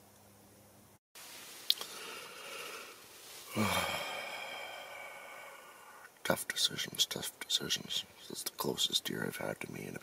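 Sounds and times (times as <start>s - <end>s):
man sighing: 1.7s - 6.1s.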